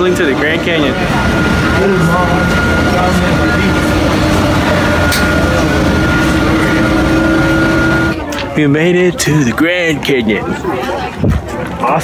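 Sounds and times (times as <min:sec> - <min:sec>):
high whine: 0:00.0 - 0:08.2
low hum: 0:00.0 - 0:08.2
bus engine and road noise: 0:00.0 - 0:08.3.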